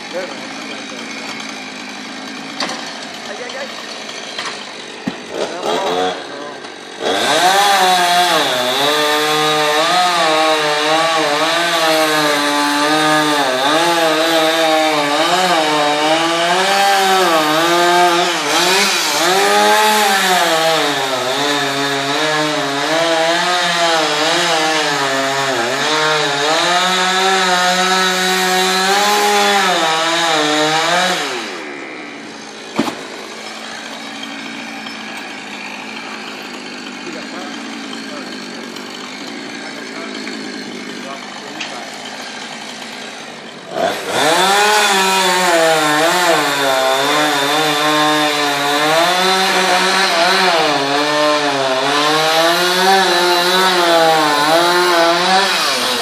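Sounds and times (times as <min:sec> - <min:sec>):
chainsaw cutting wood: 0:00.0 - 0:56.0
sharp knock: 0:32.8 - 0:33.0.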